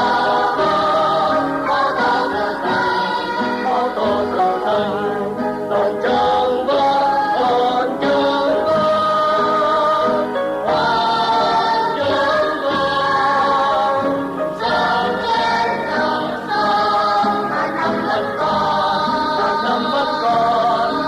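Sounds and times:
choir singing: 0:00.0 - 0:21.0
musical backing: 0:00.0 - 0:21.0.

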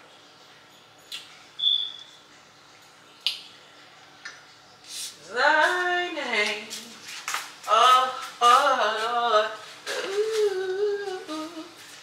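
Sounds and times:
woman humming: 0:08.7 - 0:11.8.

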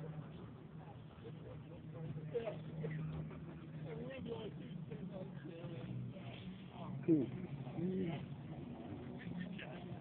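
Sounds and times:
people talking faintly: 0:00.0 - 0:10.0.

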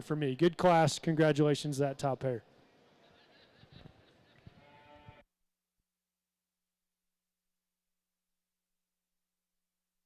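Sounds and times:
faint arena background: 0:00.0 - 0:05.2.

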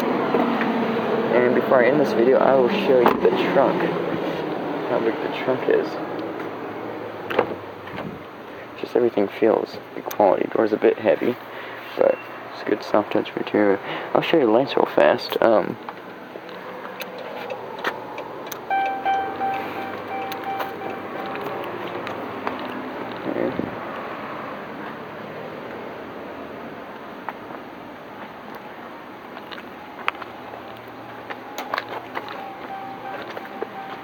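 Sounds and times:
outdoor background noise: 0:00.0 - 0:34.0
car warning chime: 0:18.6 - 0:22.1, 0:29.8 - 0:34.0.

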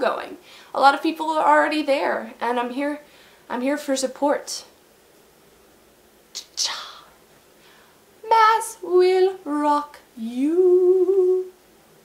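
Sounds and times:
woman singing: 0:08.2 - 0:11.6.

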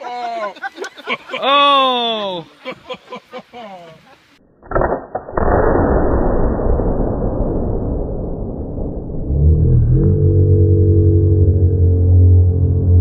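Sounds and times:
muffled explosion blasts: 0:05.4 - 0:09.9.

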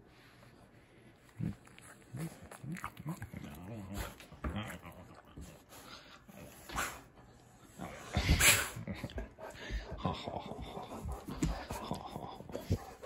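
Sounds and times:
dog making soft sounds: 0:01.2 - 0:13.0.

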